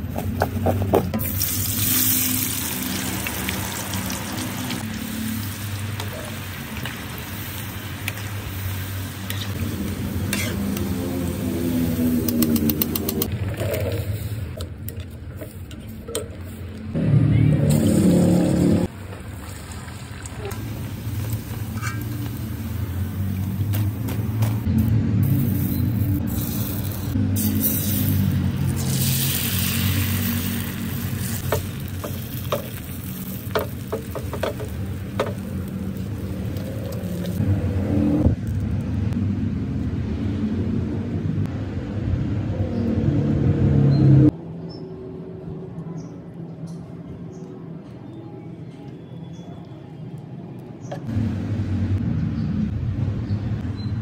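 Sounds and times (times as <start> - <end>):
eggs frying: 1.2 - 9.7, 26.2 - 37.4.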